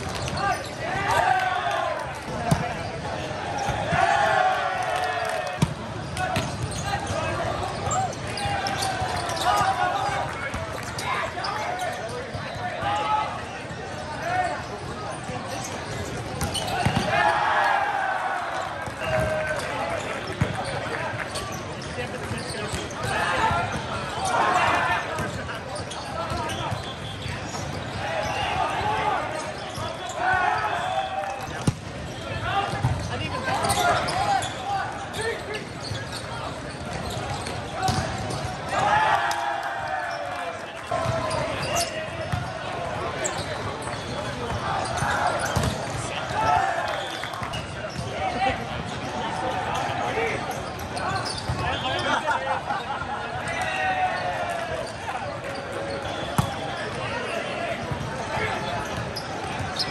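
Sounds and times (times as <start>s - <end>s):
balls bouncing on court floor: 0.0s - 0.6s, 2.0s - 4.2s, 4.9s - 11.3s, 14.7s - 17.3s, 18.6s - 24.1s, 25.0s - 28.7s, 31.3s - 51.8s, 54.8s - 57.1s, 57.7s - 59.9s
players shouting: 0.0s - 13.5s, 16.4s - 21.3s, 22.9s - 26.8s, 27.5s - 58.8s
din of many voices: 0.0s - 59.9s.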